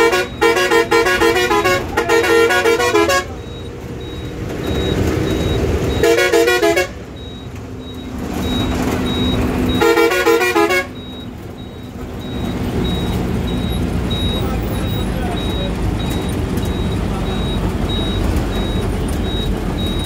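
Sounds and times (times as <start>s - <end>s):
warbling vehicle horn: 0.0s - 3.4s, 6.0s - 7.0s, 9.7s - 11.0s
engine running: 0.0s - 20.0s
faint high beeps: 3.4s - 6.0s, 7.2s - 9.8s, 11.0s - 20.0s.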